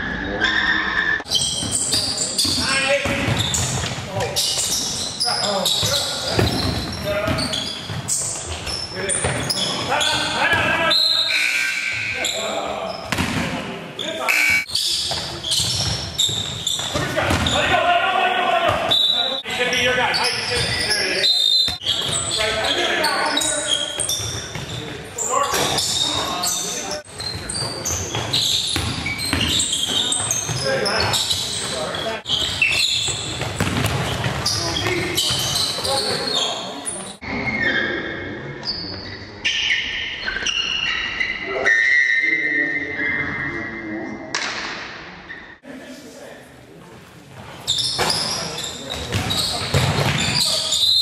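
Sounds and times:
players calling out: 0.0s - 37.2s
basketball bouncing on wooden floor: 1.5s - 4.0s, 13.0s - 13.5s, 15.0s - 17.6s, 24.0s - 24.8s, 27.2s - 31.5s, 32.3s - 35.9s, 48.9s - 50.4s.

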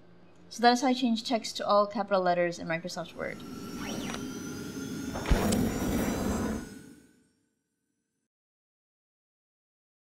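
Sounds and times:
sweeping whoosh: 3.0s - 7.2s
low thump: 5.2s - 6.2s.

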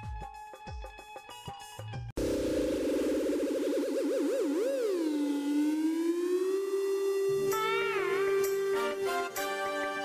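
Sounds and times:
synthesized warbling tone: 2.2s - 8.6s.

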